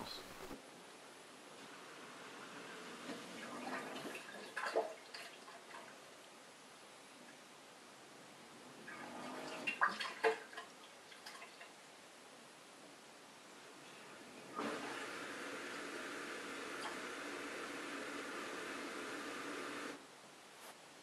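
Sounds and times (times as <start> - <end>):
drain pump running: 14.0 - 20.0.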